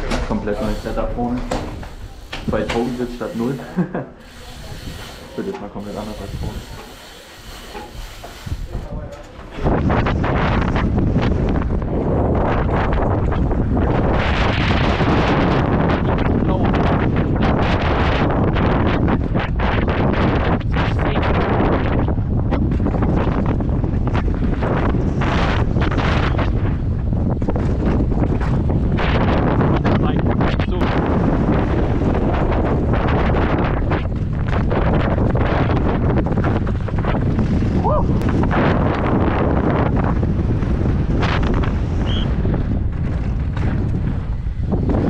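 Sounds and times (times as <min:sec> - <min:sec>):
tyres on dirt: 0:00.0 - 0:09.7
wind rushing on microphone: 0:00.0 - 0:45.0.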